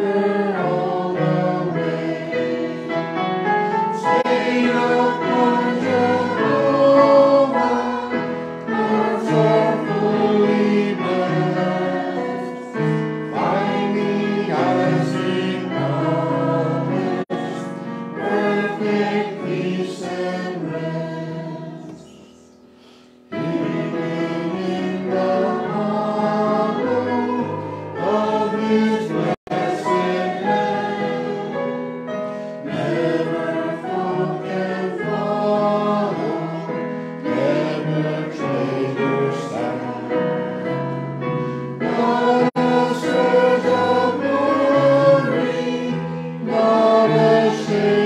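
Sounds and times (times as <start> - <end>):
congregation singing a hymn: 0.0 - 48.0.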